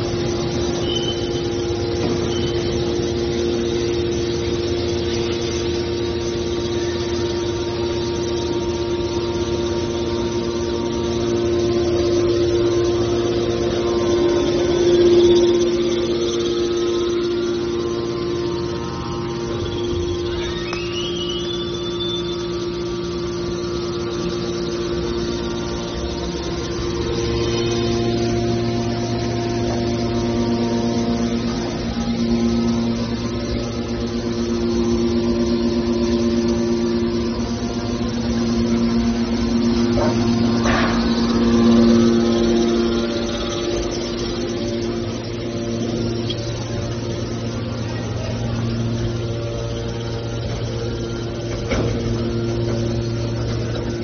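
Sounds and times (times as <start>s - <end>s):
hydraulic power unit humming: 0.0s - 54.0s
short rising squeal: 13.2s - 22.7s.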